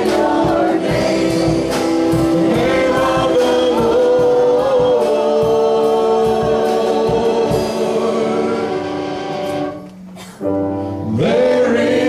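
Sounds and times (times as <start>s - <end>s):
sustained singing: 0.0s - 9.8s, 11.1s - 12.0s
gospel band with guitars: 0.0s - 12.0s.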